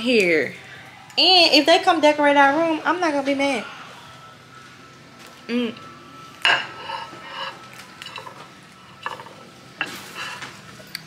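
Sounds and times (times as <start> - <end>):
fork clinking and scraping on plate: 6.5 - 11.0.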